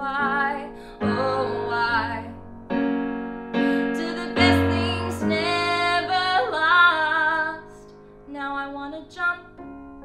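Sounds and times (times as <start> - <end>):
woman singing: 0.0 - 2.5, 3.6 - 9.8
piano chords: 0.0 - 10.0.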